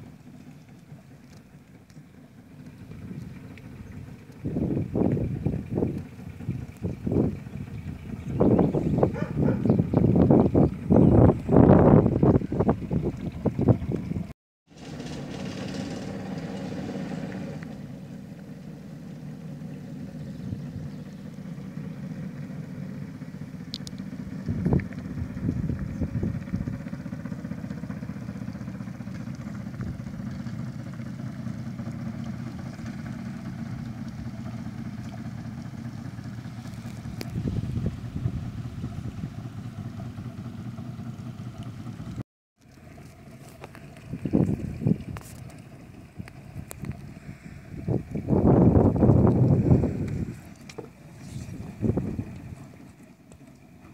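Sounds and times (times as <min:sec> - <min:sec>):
boat engine running: 0:00.0 - 0:53.9.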